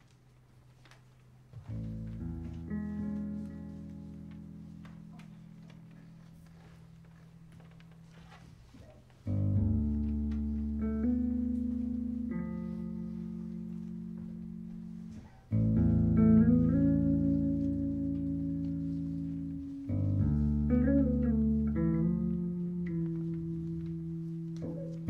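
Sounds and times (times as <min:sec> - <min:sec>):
electric bass chords: 0:01.6 - 0:06.0, 0:09.2 - 0:25.0.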